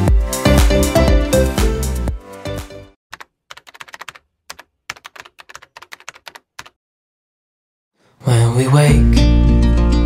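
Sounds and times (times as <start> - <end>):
music: 0.0 - 3.0, 8.3 - 10.0
keyboard typing clicks: 3.1 - 6.8.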